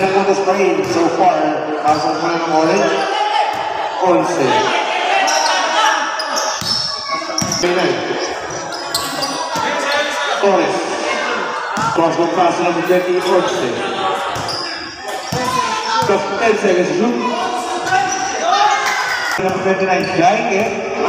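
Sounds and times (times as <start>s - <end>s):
people talking: 0.0s - 3.1s, 4.0s - 21.0s
basketball bouncing on court floor: 6.6s - 7.6s.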